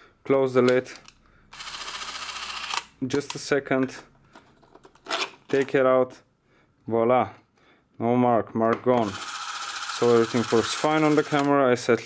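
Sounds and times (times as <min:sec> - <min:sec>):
cine camera motor whirring: 0:01.6 - 0:02.9, 0:09.0 - 0:11.5.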